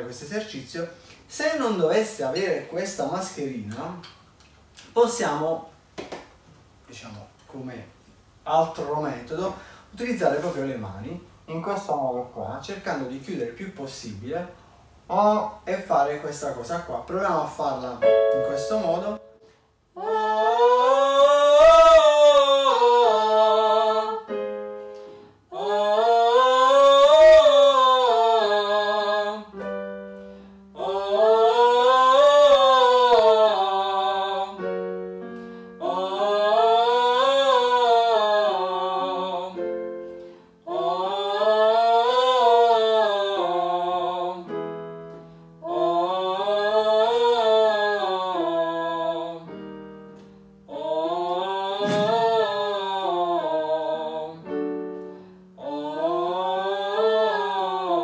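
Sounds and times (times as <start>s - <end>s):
held electronic keyboard notes: 17.9s - 20.5s, 21.1s - 58.0s
person singing vocalise through hands: 20.0s - 23.6s, 51.2s - 52.6s.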